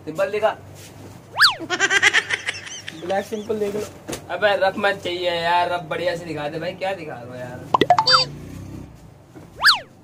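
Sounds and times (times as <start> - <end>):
comic whistle sweep: 1.4 - 1.7, 9.6 - 9.9.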